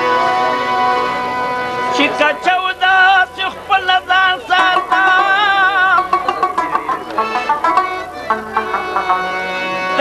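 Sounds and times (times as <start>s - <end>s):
harmonium holding a chord: 0.0s - 10.0s.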